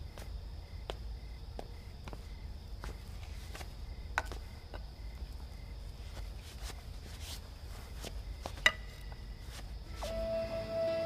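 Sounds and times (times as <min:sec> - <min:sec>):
soft background music: 0:09.9 - 0:11.0.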